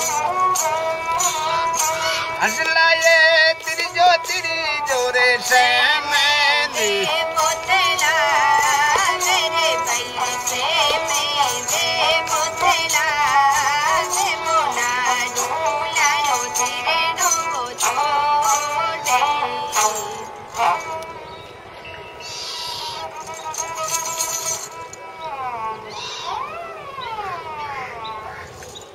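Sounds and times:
bowed fiddle folk melody: 0.0s - 28.6s.

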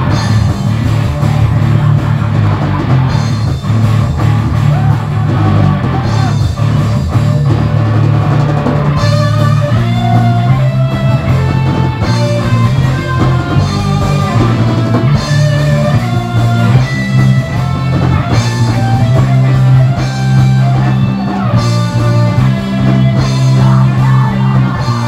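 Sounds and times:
rock band playing live: 0.0s - 25.0s.

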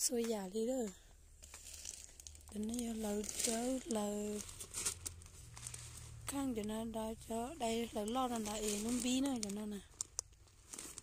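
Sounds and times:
plastic bag of beads crinkling: 1.3s - 11.0s.

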